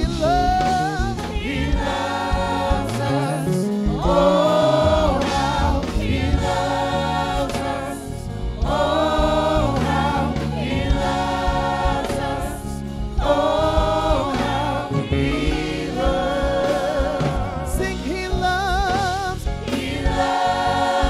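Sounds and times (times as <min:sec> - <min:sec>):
live band accompaniment: 0:00.0 - 0:21.0
singers in harmony: 0:00.0 - 0:21.0.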